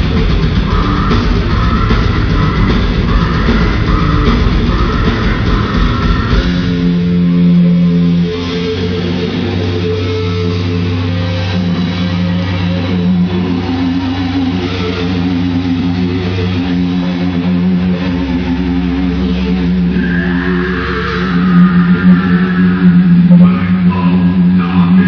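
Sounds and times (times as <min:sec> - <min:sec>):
heavy metal band playing live: 0:00.0 - 0:25.0.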